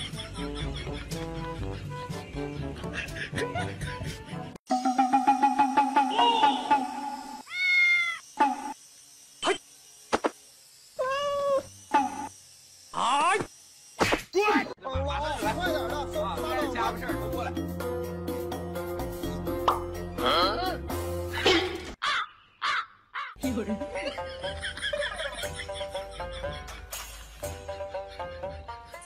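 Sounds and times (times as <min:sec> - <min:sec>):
background music: 0:00.0 - 0:07.4, 0:14.9 - 0:21.9, 0:23.4 - 0:29.0
cat meowing: 0:07.5 - 0:08.2
crow cawing: 0:22.0 - 0:23.4.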